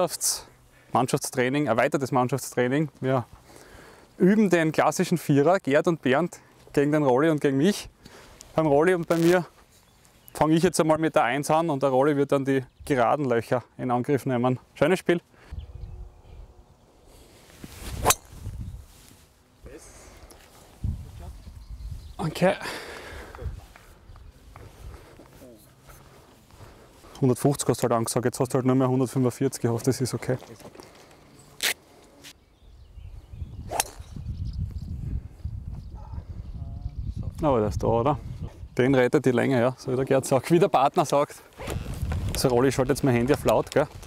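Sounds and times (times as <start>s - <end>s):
golf club swing swish: 17.4s - 18.8s, 33.7s - 34.2s
golf ball impact crack: 33.7s - 34.2s.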